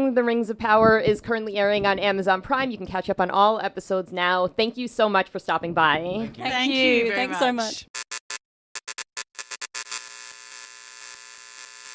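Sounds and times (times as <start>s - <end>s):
buzzing electronic drone: 9.4s - 11.9s.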